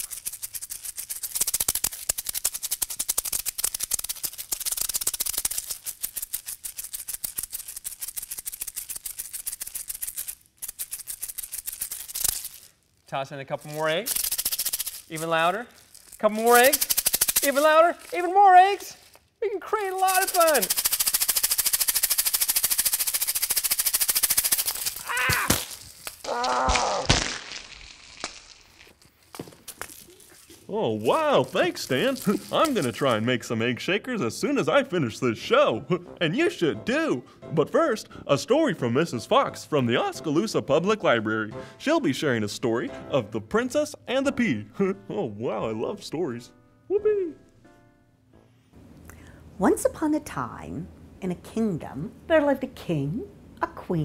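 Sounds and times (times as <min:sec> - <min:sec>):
egg shakers rattling: 0:00.0 - 0:26.2, 0:27.2 - 0:33.7.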